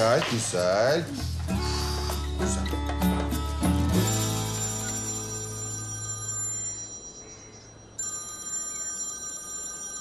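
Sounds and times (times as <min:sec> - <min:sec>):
phone ringtone chiming: 0:04.0 - 0:10.0.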